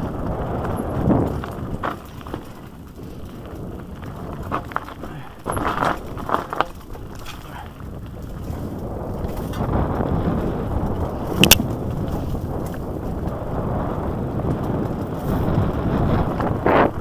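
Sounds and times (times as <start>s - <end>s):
bike tyres rumbling on dirt: 0.0s - 17.0s
sharp clack: 11.4s - 11.7s.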